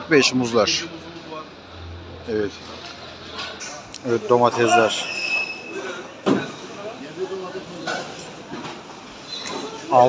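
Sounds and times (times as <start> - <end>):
market voices: 0.0 - 10.0
high steady squeal: 4.9 - 5.8.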